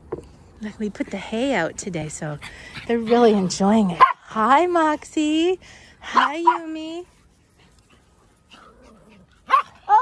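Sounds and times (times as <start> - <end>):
small dog barking: 4.0 - 4.2, 6.1 - 6.7, 9.4 - 10.0.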